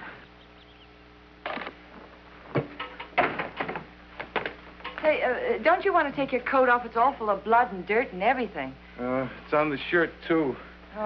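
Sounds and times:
television soundtrack hum: 0:00.0 - 0:11.0.

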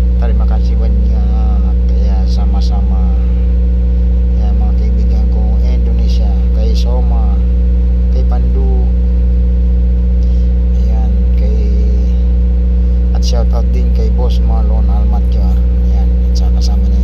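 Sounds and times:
low mechanical hum: 0:00.0 - 0:17.0
person talking: 0:00.2 - 0:03.4, 0:04.4 - 0:07.5, 0:08.1 - 0:09.0, 0:10.7 - 0:12.3, 0:13.1 - 0:17.0.

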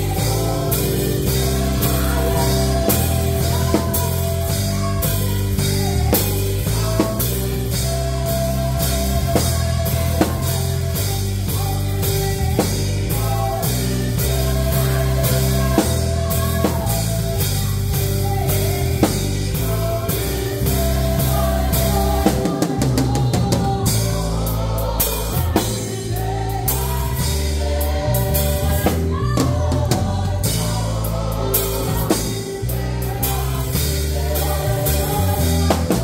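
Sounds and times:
deep bass line: 0:00.0 - 0:36.0
gospel band playing: 0:00.0 - 0:36.0
group singing: 0:00.0 - 0:36.0.

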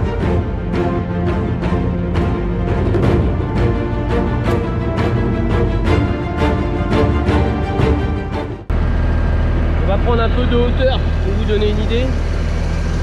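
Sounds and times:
background music: 0:00.0 - 0:08.7
tractor engine running: 0:08.2 - 0:13.0.

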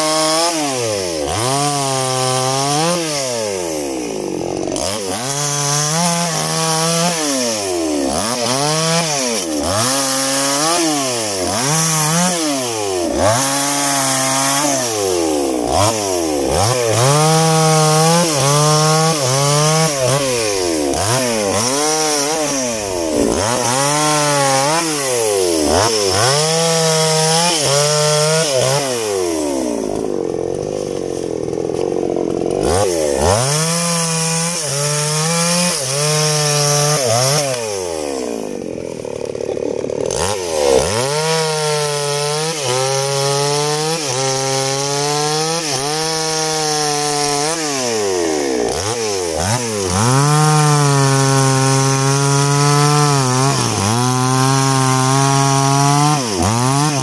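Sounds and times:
chainsaw revving cutting wood: 0:00.0 - 0:57.0.

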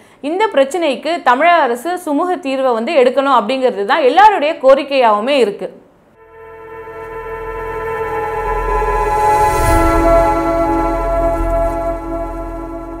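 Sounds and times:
low rumble: 0:06.2 - 0:13.0
sustained synthesized chord: 0:06.2 - 0:13.0.

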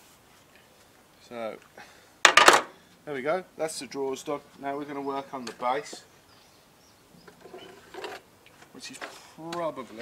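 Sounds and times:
faint birdsong: 0:00.5 - 0:09.8.

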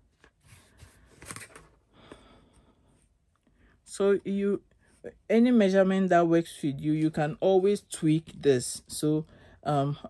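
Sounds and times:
ruler rustling on fabric: 0:00.0 - 0:01.8.

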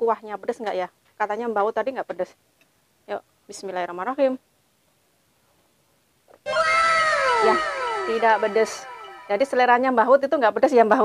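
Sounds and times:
voice-like wow sound effect: 0:06.5 - 0:09.8.

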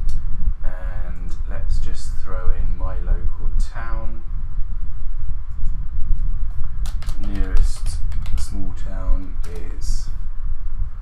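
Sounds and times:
keyboard typing: 0:06.8 - 0:09.8.

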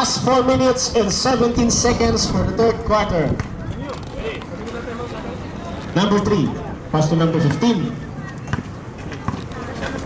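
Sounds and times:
faint voices: 0:00.0 - 0:10.0
basketball bouncing on concrete: 0:08.4 - 0:09.6.

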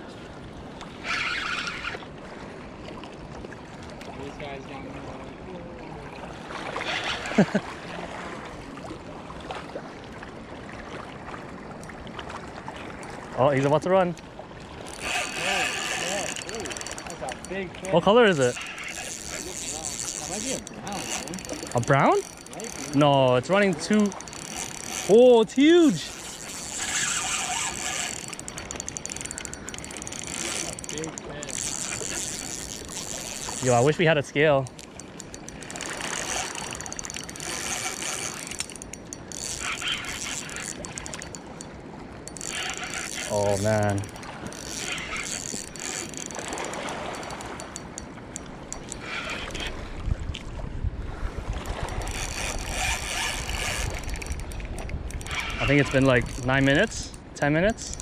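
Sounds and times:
fishing reel drag clicking: 0:00.8 - 0:02.1, 0:06.7 - 0:07.6, 0:14.1 - 0:50.4, 0:51.6 - 0:58.0
wind rumble on microphone: 0:49.2 - 0:57.2.

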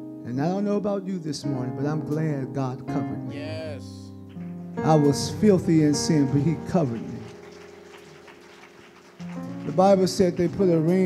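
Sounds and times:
person speaking: 0:03.3 - 0:04.2.

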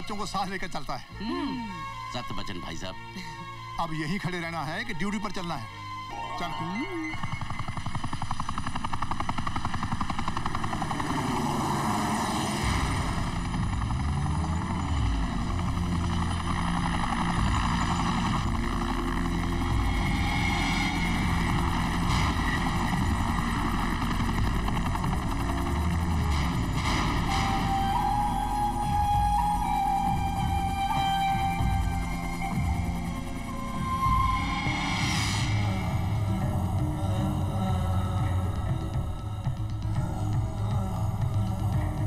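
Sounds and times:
helicopter rotor chop: 0:06.5 - 0:42.0.

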